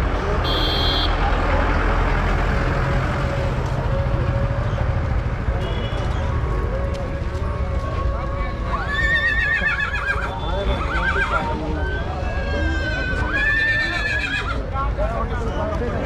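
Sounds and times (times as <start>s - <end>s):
crowd chatter: 0.0s - 16.0s
horse whinnying: 8.8s - 14.6s.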